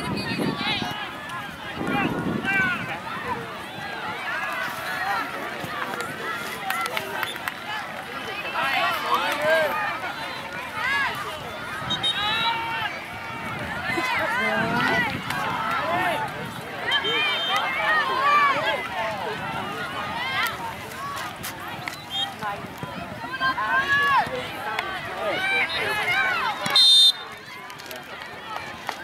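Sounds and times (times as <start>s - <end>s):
crowd of voices calling: 0.0s - 29.0s.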